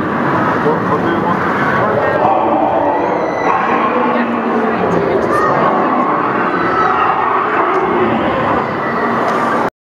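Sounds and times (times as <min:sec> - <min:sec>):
echoing din of indoor hall: 0:00.0 - 0:09.7.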